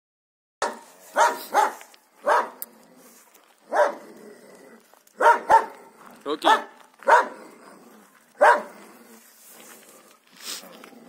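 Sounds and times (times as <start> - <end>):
dogs barking: 0.6 - 2.7, 3.6 - 4.2, 5.2 - 8.9.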